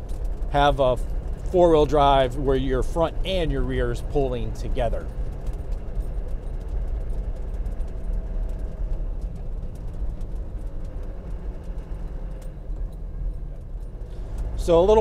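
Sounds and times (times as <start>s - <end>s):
diesel engine low rumble: 0.0s - 15.0s
tyre road noise: 0.0s - 15.0s.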